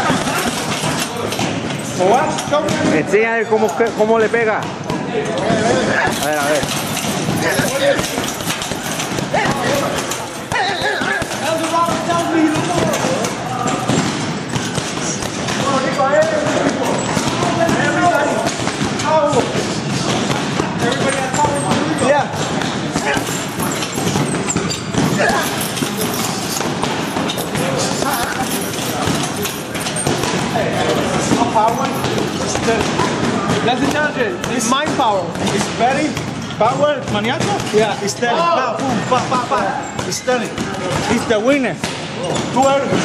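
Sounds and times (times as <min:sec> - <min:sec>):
gloves punching heavy bag: 0:00.0 - 0:03.2, 0:03.8 - 0:43.0
gym voices: 0:00.0 - 0:43.0.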